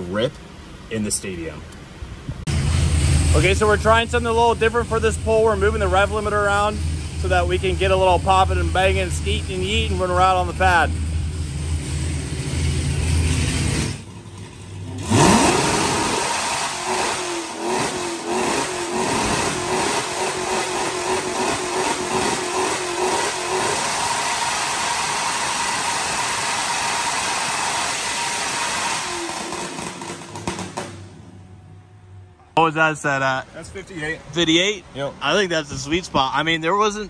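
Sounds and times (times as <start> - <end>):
car engine revving: 2.5 - 32.3
engine popping on rev limiter: 13.6 - 31.3.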